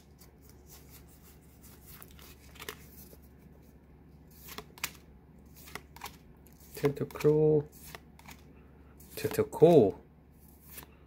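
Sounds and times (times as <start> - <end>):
cards sliding against cards: 0.0 - 11.0.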